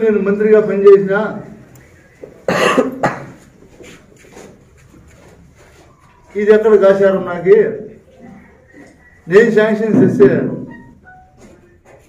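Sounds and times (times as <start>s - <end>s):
man speaking: 0.0s - 2.6s, 6.3s - 10.8s
loud cough: 2.5s - 3.4s.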